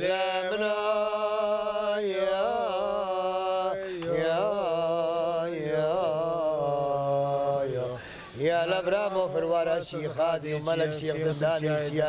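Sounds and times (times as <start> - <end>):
man chanting a hymn: 0.0 - 12.0.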